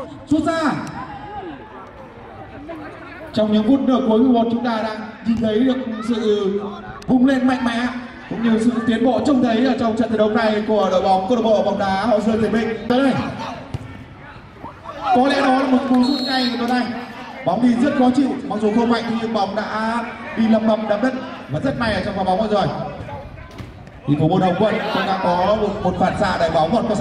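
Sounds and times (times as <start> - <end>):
faint outdoor ambience: 0.0 - 27.0
football kick thud: 13.1 - 14.0.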